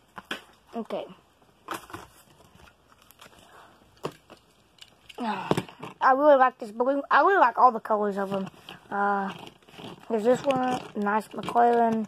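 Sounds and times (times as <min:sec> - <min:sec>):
plastic packaging crinkling: 0:08.4 - 0:12.0.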